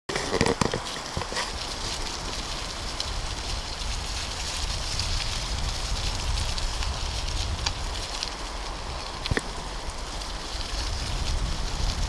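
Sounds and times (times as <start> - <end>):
bicycle tyres rolling over leaves: 0.1 - 12.0
wind on microphone: 0.1 - 12.0.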